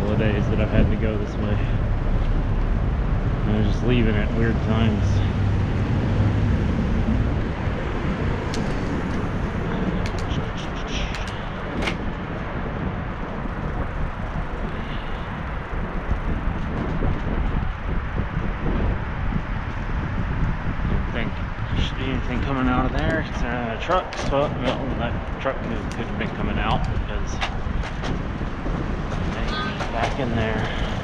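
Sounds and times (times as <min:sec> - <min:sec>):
city traffic: 0:00.0 - 0:31.0
wind rumbling on microphone: 0:00.0 - 0:31.0.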